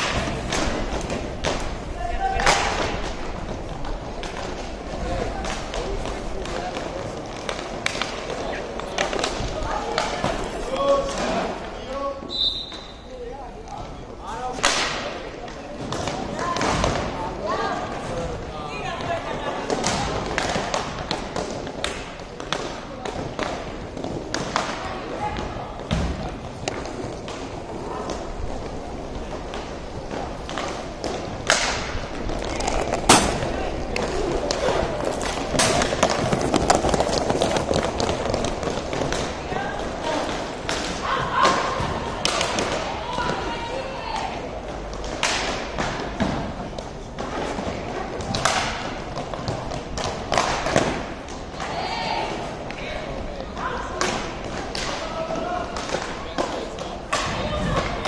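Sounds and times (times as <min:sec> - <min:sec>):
hockey sticks and puck clacking: 0:00.0 - 0:58.0
players and spectators calling out: 0:39.3 - 0:44.6.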